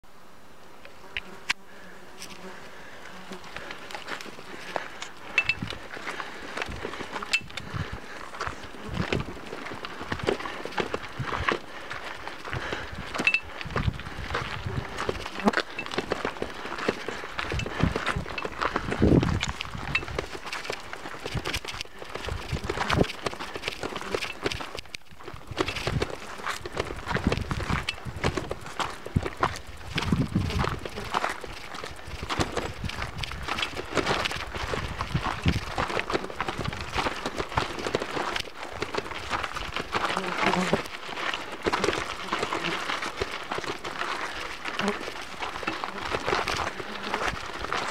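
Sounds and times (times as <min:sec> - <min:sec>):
insect buzzing: 0:00.6 - 0:06.4, 0:11.0 - 0:24.7, 0:25.5 - 0:37.0, 0:39.2 - 0:43.1, 0:44.2 - 0:47.6
footsteps on gravel: 0:00.9 - 0:47.9.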